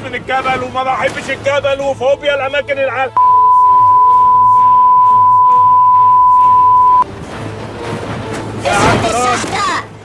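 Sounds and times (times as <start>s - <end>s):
censor bleep tone: 3.2s - 7.0s.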